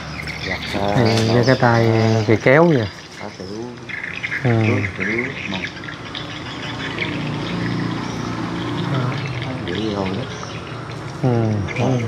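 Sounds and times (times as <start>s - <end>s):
water running and splashing: 0.0s - 12.0s.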